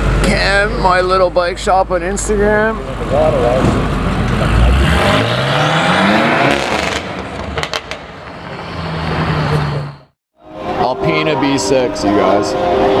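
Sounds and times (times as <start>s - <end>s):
exhaust cracks: 0.0s - 9.8s
car engine revving: 0.0s - 10.1s.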